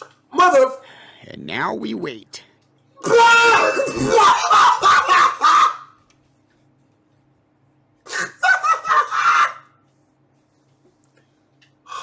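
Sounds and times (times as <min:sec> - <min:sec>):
man laughing loudly: 0:04.1 - 0:05.8, 0:08.1 - 0:09.5.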